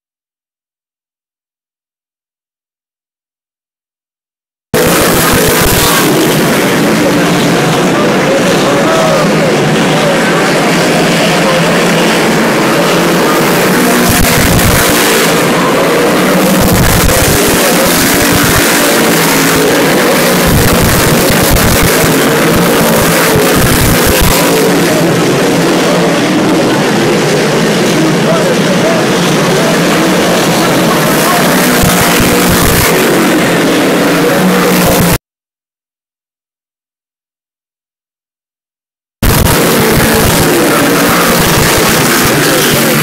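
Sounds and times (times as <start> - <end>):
race car engines racing: 4.8 - 35.2, 39.2 - 43.0.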